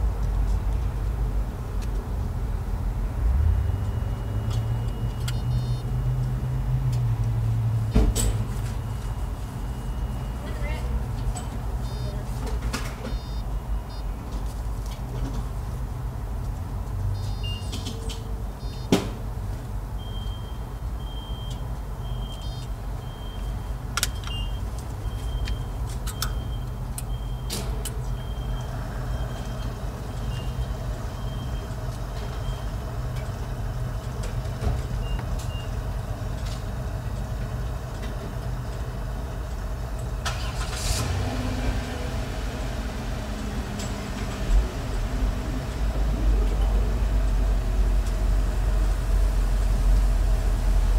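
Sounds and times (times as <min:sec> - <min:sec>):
car engine idling: 0:27.8 - 0:50.9.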